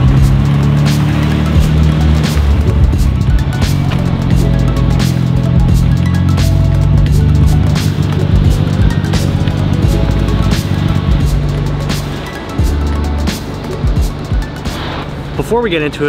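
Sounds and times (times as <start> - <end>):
music with deep bass: 0.0 - 16.0
steady drum beat: 0.0 - 16.0.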